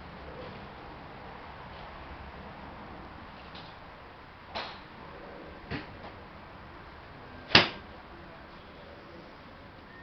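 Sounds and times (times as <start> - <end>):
golf club striking ball: 7.5 - 7.8.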